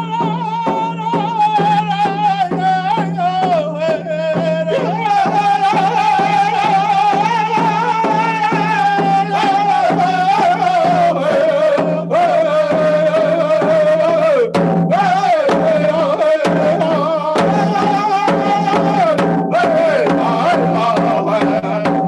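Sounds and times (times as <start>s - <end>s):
frame drums beating: 0.0s - 22.0s
men singing held notes: 0.0s - 22.0s.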